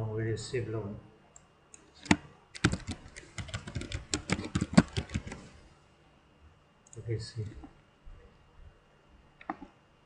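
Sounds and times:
computer keyboard typing: 0:01.8 - 0:05.5.

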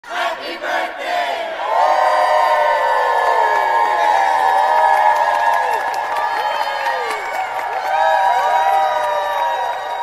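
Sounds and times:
crowd cheering: 0:01.6 - 0:10.0.

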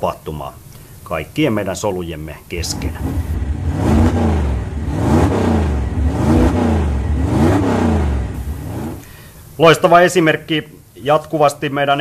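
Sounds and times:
low rumble: 0:02.6 - 0:09.0
engine revving: 0:02.6 - 0:09.1.

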